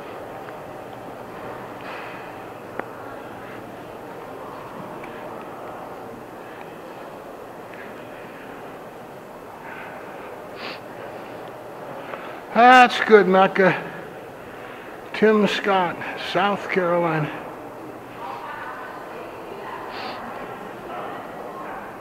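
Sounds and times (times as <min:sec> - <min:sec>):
rumbling corridor background noise: 0:00.0 - 0:22.0.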